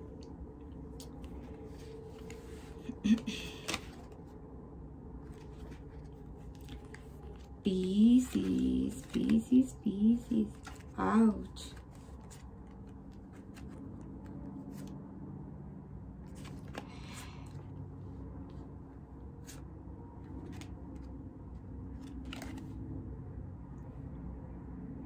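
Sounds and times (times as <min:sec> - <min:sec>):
low room hum: 0:00.0 - 0:25.0
playing cards being dealt: 0:00.9 - 0:04.3, 0:05.2 - 0:15.0, 0:16.3 - 0:17.5, 0:22.0 - 0:22.8.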